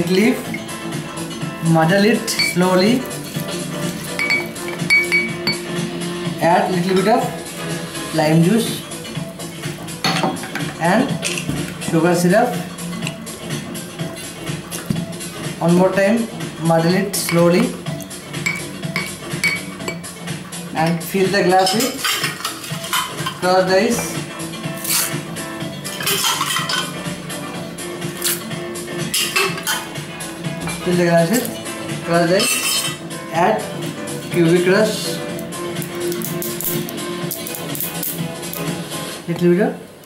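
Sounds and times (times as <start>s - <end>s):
background music: 0.0s - 40.0s
glass bottle clinking on table: 4.2s - 5.6s.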